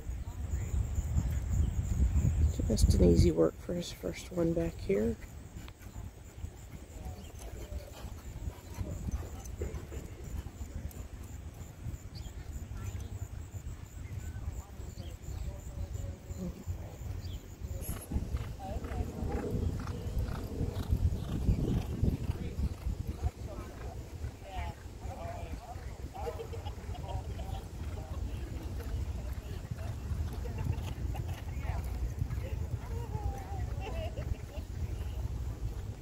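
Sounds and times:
faint voices: 0:00.0 - 0:36.0
hoofbeats on dirt track: 0:00.0 - 0:36.0
wind rumbling on microphone: 0:00.0 - 0:36.0.

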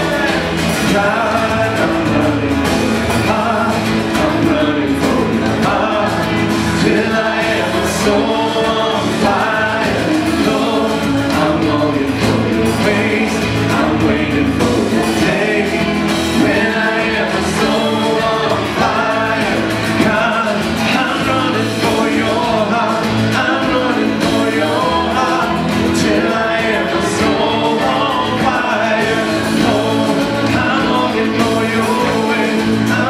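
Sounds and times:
man singing lead vocal: 0:00.0 - 0:33.0
women singing along: 0:00.0 - 0:33.0
worship band playing: 0:00.0 - 0:33.0.

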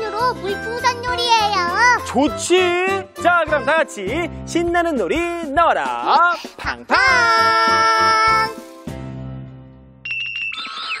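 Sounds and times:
bright bell-like chiming tones: 0:10.0 - 0:11.0.

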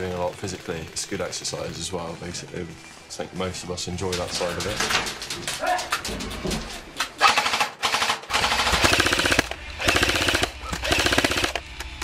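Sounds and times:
airsoft rifle bursts: 0:07.2 - 0:11.7.

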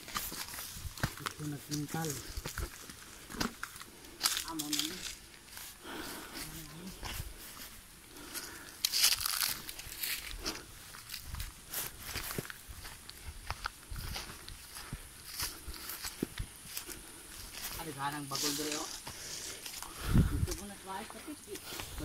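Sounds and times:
footsteps through dry leaves: 0:00.0 - 0:22.0.

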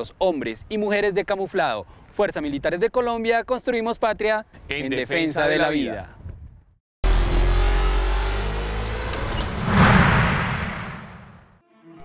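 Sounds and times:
whoosh with deep rumble: 0:09.1 - 0:11.6.

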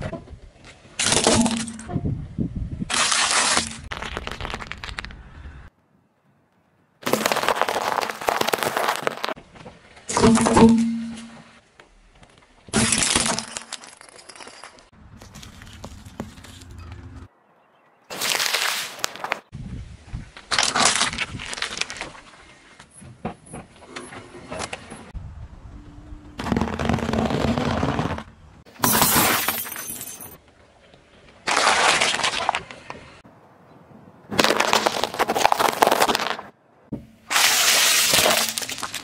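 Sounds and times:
tyre crunching biscuits: 0:02.9 - 0:05.2, 0:07.0 - 0:09.4, 0:12.8 - 0:16.8, 0:18.1 - 0:19.5, 0:34.3 - 0:36.5, 0:37.3 - 0:39.0
glass container shattering: 0:12.8 - 0:14.9, 0:28.8 - 0:30.4, 0:37.3 - 0:39.0
light bulbs cracking and shattering: 0:37.3 - 0:39.0.

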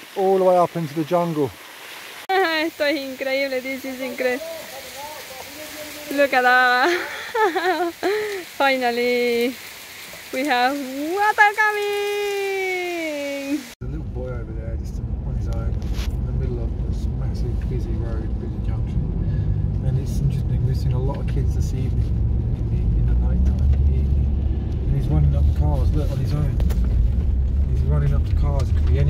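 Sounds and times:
car driving rumble from inside: 0:13.8 - 0:29.0.

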